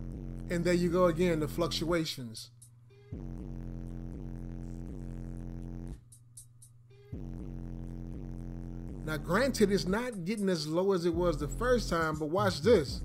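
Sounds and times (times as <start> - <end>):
bass-heavy song through subwoofers: 0.0 - 2.0, 3.0 - 6.2, 7.0 - 10.2, 11.1 - 13.0.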